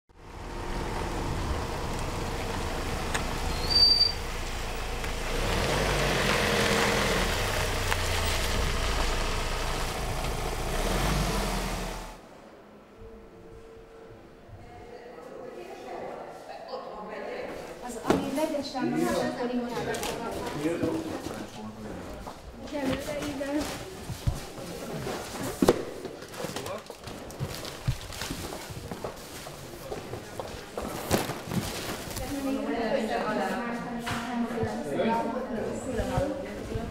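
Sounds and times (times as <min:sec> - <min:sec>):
van engine driving: 0:00.1 - 0:12.2
brief high squeak: 0:03.5 - 0:04.2
background chatter: 0:13.9 - 0:27.4, 0:28.8 - 0:36.9.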